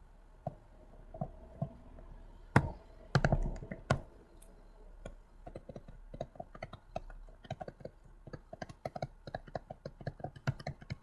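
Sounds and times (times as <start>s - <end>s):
stylus tapping on tablet screen: 2.5s - 4.1s, 5.0s - 11.0s.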